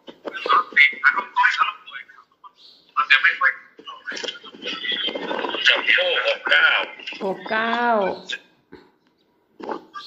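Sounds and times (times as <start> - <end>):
person talking: 0.3 - 8.5.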